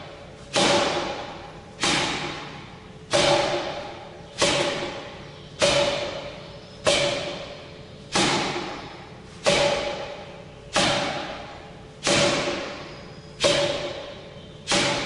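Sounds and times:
forearm thuds on striking post: 0:00.5 - 0:15.0.

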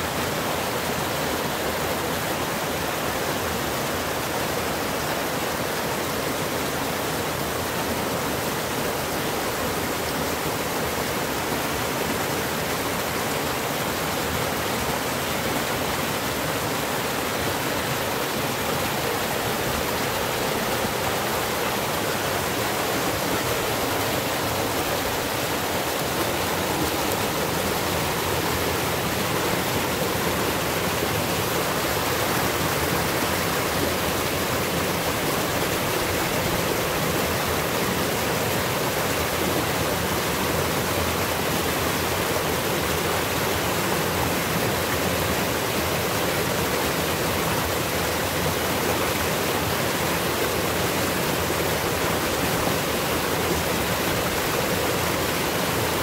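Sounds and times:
water rushing over rocks: 0:00.0 - 0:56.0.

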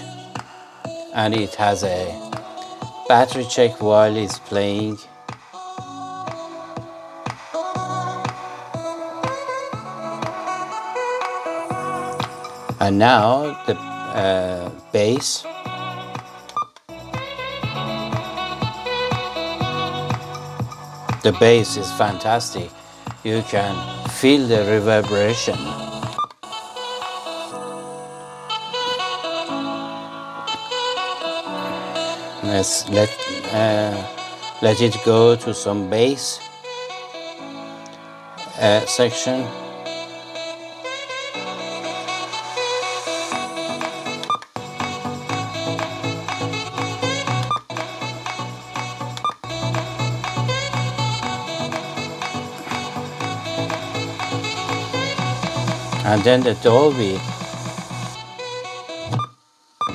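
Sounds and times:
music from small speaker: 0:00.0 - 0:59.9
heavy bass line: 0:43.3 - 0:58.2.

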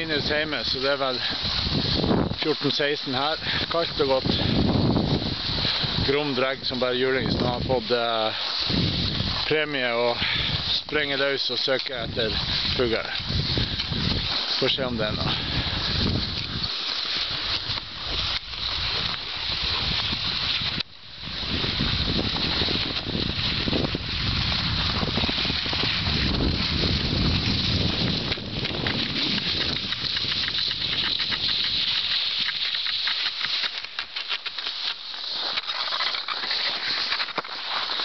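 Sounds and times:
wind buffeting microphone: 0:00.0 - 0:08.0, 0:08.6 - 0:11.0, 0:11.8 - 0:33.1
skis sliding over snow: 0:00.0 - 0:38.0
fast rattling patter: 0:26.4 - 0:33.8.

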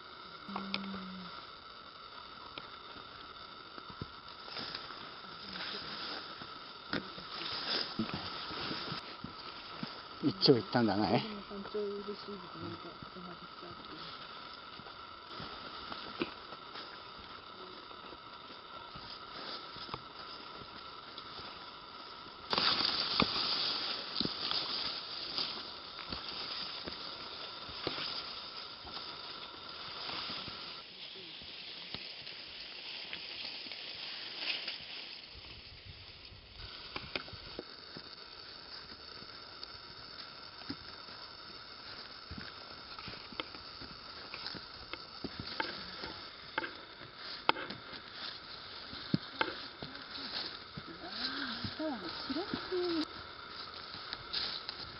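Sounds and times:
grass rustling against hiker: 0:00.0 - 0:54.9.

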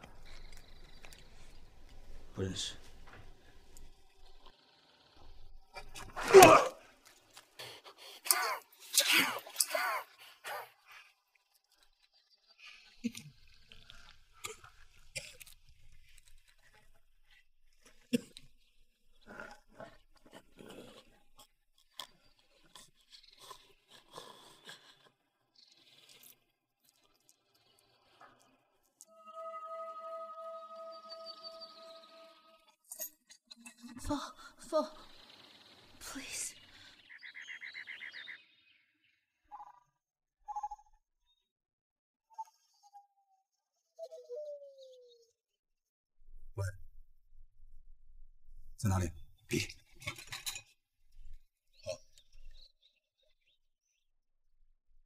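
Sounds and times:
steady held tone: 0:29.0 - 0:32.7.

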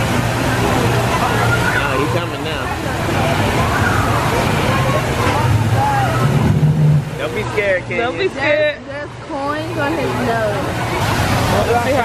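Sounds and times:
waterfall rushing: 0:00.0 - 0:12.0
loud low rumbling: 0:02.7 - 0:07.8.

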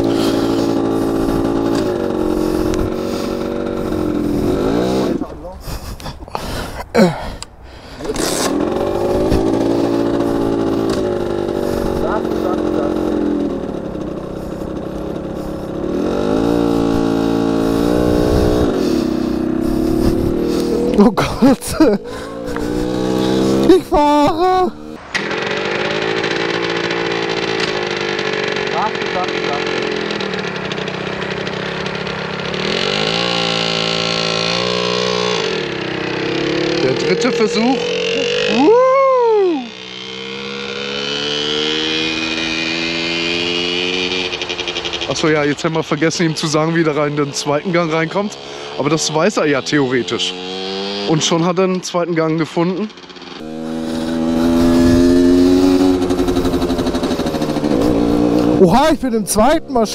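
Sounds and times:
moped engine revving: 0:00.0 - 0:59.9.

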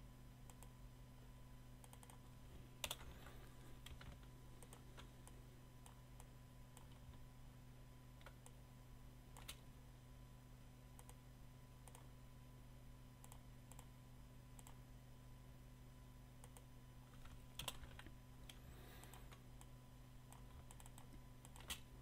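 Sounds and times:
low steady hum: 0:00.0 - 0:22.0
mouse and keyboard clicks: 0:09.4 - 0:09.6, 0:20.3 - 0:21.9.

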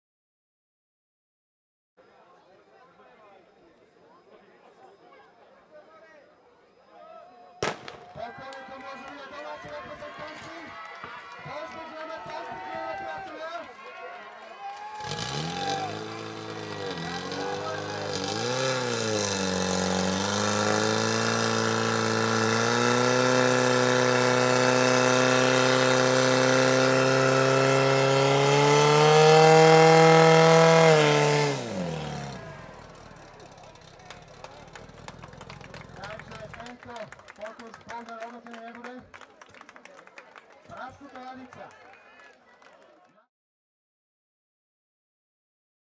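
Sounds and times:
pump engine revving: 0:15.0 - 0:36.8.

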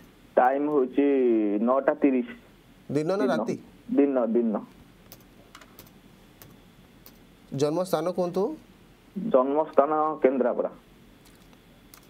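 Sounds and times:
man speaking: 0:00.4 - 0:04.7, 0:07.5 - 0:08.6
keystrokes on computer keyboard: 0:05.1 - 0:07.2, 0:11.2 - 0:12.0.

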